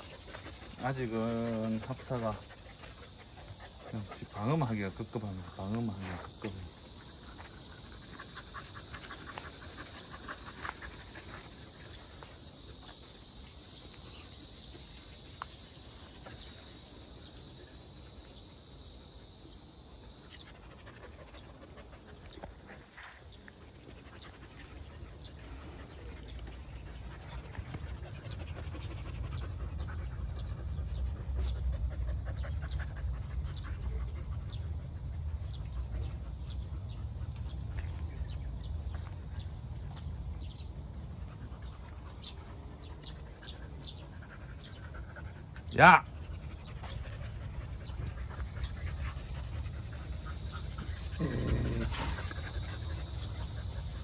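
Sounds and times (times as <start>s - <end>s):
low dog vocalisation: 43.0s - 54.0s.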